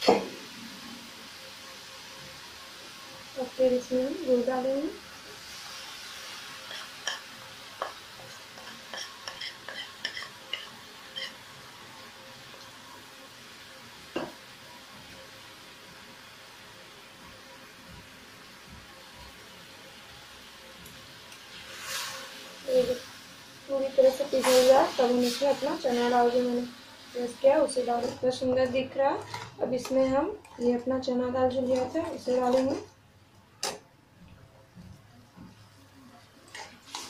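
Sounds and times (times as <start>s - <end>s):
faint steady sizzle: 0.0s - 37.0s
metal spatula scraping pan: 6.6s - 7.3s, 8.6s - 11.4s, 24.2s - 26.2s.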